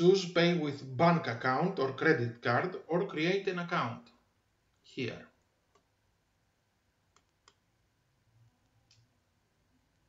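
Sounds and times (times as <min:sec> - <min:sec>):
computer mouse clicks: 0:07.1 - 0:07.7, 0:08.6 - 0:09.2.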